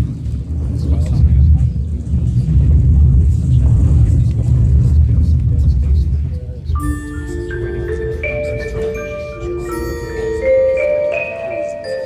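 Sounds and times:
deep percussion rumble: 0:00.0 - 0:11.8.

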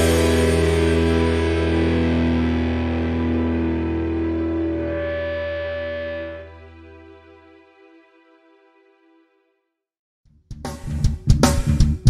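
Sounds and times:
distorted electric guitar chord ringing: 0:00.0 - 0:07.0.

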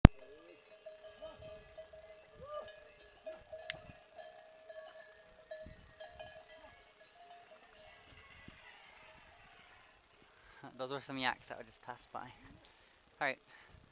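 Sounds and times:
yak bells ringing: 0:00.0 - 0:08.2.

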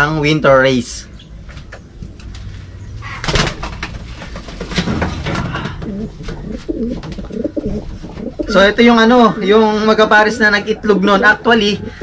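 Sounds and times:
wings flapping: 0:03.1 - 0:08.5
pigeons cooing: 0:04.2 - 0:12.0.

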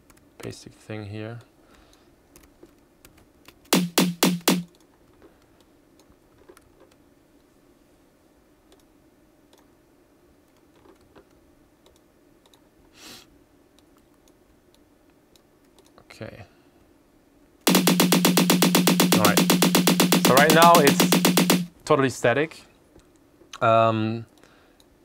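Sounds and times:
computer keyboard and mouse clicks: 0:02.4 - 0:04.9
snare drum hits: 0:03.7 - 0:04.7, 0:17.7 - 0:21.7.

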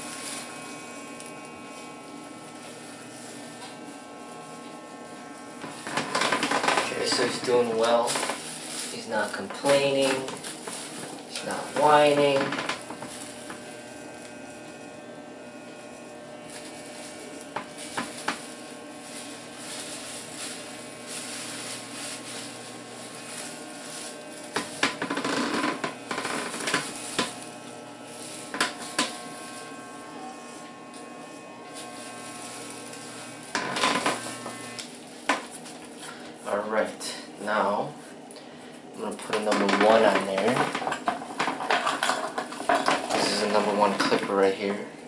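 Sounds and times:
scratchy noises: 0:00.0 - 0:38.2, 0:39.0 - 0:44.9
electric hair clipper buzzing: 0:00.0 - 0:45.0.

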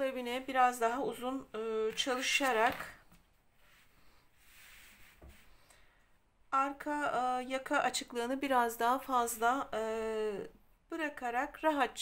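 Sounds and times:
hands rustling over wool sweater: 0:03.4 - 0:05.7.

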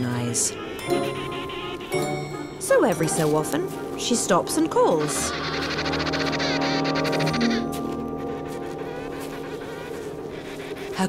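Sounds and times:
orchestral music: 0:00.0 - 0:11.0
penguin calling: 0:00.0 - 0:11.0.

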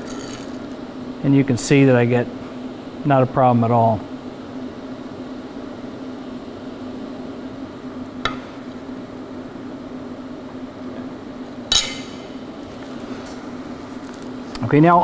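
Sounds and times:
steady low hum: 0:00.0 - 0:15.0
metal plate ringing clink: 0:11.7 - 0:12.3.

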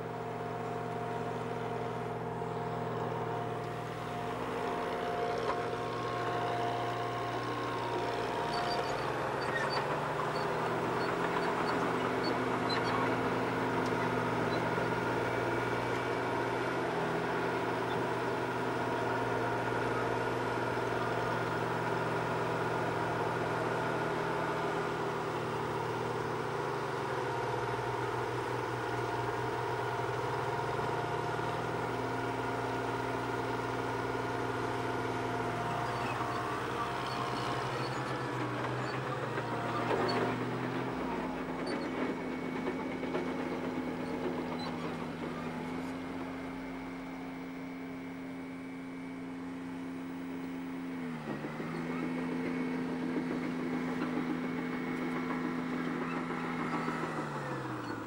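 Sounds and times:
heavy diesel machinery running: 0:00.0 - 0:58.0.

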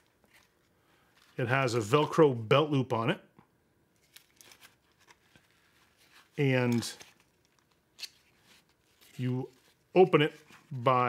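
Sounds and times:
knife sheath rustling and ticking: 0:04.0 - 0:10.8.

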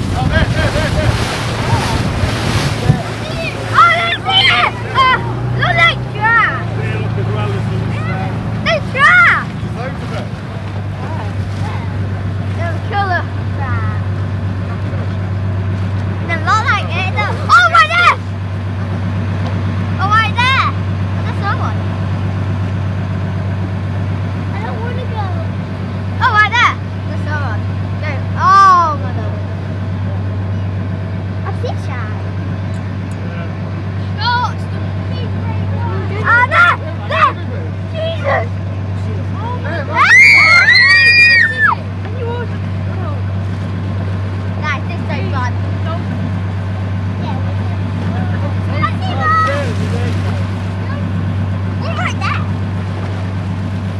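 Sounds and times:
speedboat engine droning: 0:00.0 - 0:53.9
people calling out: 0:02.8 - 0:09.7, 0:39.8 - 0:43.2.

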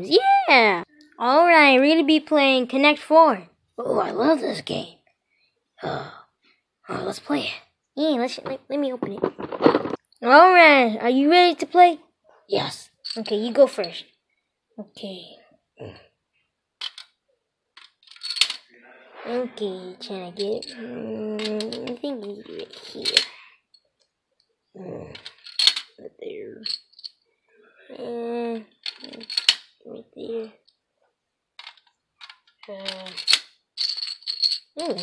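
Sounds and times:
plastic checkers rattling: 0:08.4 - 0:10.0, 0:13.0 - 0:14.0, 0:16.8 - 0:17.1, 0:17.8 - 0:18.6, 0:20.4 - 0:20.8, 0:21.4 - 0:23.4, 0:25.1 - 0:26.0, 0:26.6 - 0:27.1, 0:28.6 - 0:29.7, 0:31.6 - 0:35.0
plastic checker clattering down grid: 0:17.8 - 0:18.6.

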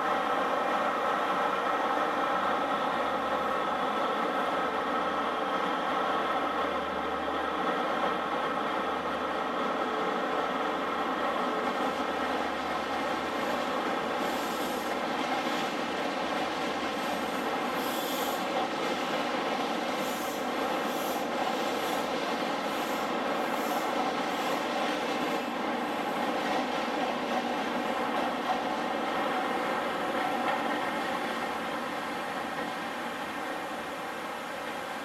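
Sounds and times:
diesel train drone: 0:00.0 - 0:35.0
train coaches rolling by: 0:00.0 - 0:35.0.

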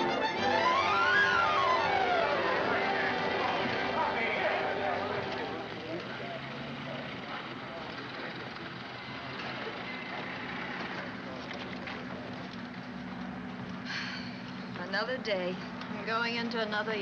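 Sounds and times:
crowd babble: 0:00.0 - 0:17.0
traffic: 0:00.0 - 0:17.0.

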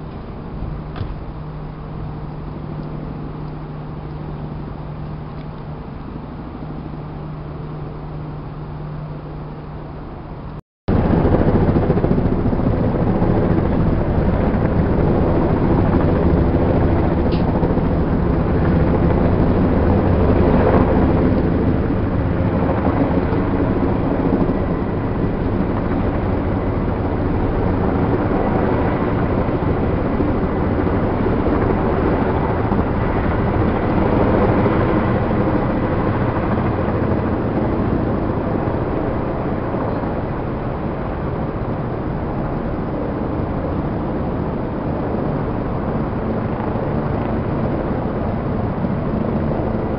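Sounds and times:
helicopter rotor and engine drone: 0:00.0 - 0:49.9.

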